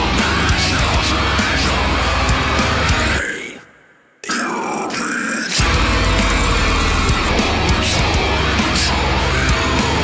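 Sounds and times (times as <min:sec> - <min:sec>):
deathcore band playing: 0:00.0 - 0:03.5, 0:04.2 - 0:10.0
harsh growled vocal: 0:00.0 - 0:10.0.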